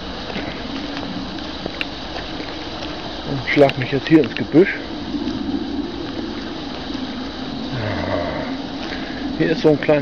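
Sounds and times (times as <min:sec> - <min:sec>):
leaves and twigs rustling: 0:00.0 - 0:10.0.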